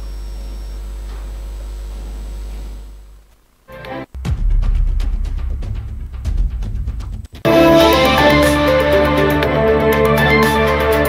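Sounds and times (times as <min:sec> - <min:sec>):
low electrical hum: 0:00.0 - 0:04.2.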